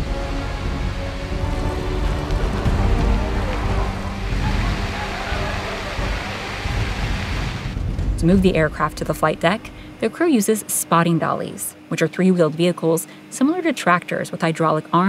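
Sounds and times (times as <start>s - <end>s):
background music held tones: 0.0s - 15.0s
sprinklers pouring water on steel: 2.0s - 7.9s.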